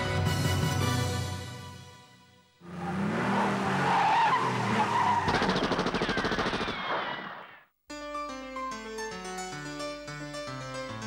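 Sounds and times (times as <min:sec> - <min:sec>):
car speeding: 0:02.6 - 0:07.6
machine-gun fire: 0:05.3 - 0:07.5.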